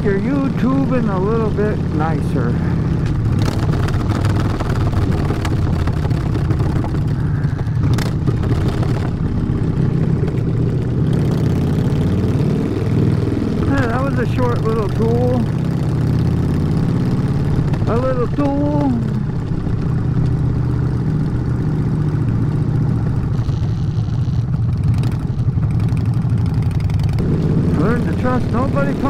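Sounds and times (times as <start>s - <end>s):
motorcycle engine running: 0.0s - 29.0s.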